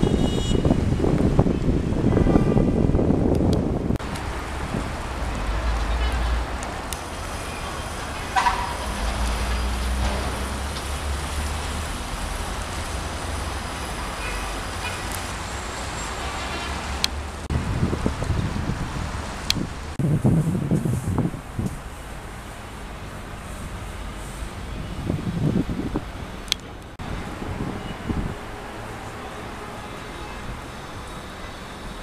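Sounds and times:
wind on microphone: 0:00.0 - 0:07.4, 0:17.4 - 0:22.5, 0:23.2 - 0:28.8
distant road traffic: 0:00.0 - 0:32.0.

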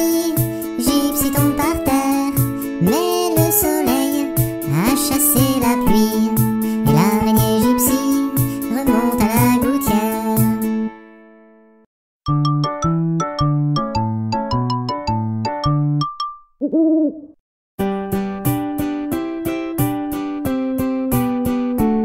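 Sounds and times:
cartoon owl hoot: 0:16.6 - 0:17.4.

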